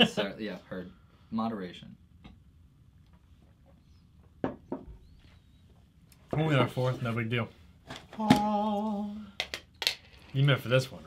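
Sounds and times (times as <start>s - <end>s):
glass mugs knocking on table: 4.4s - 4.9s.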